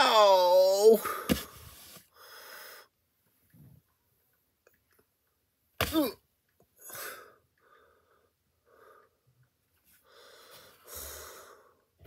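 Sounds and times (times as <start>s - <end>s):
person shouting: 0.0s - 1.1s.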